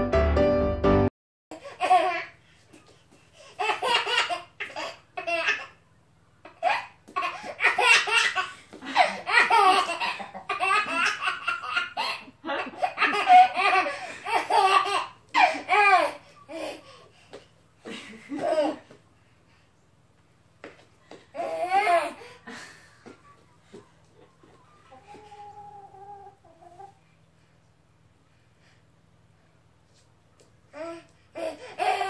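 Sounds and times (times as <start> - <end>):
baby boy giggling: 3.6 - 5.8, 6.4 - 16.8, 31.4 - 32.0.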